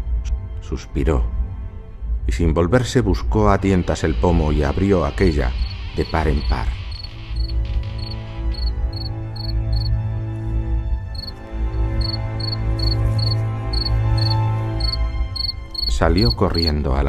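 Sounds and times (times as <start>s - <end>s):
slow background music: 0.0s - 17.0s
cricket chirping: 5.5s - 10.0s, 11.2s - 16.4s.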